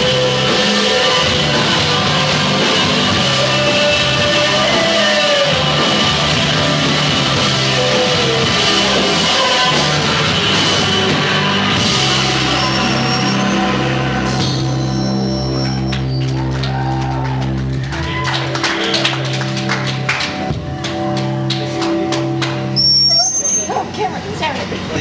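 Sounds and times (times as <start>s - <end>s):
audience clapping and cheering: 15.6s - 22.9s.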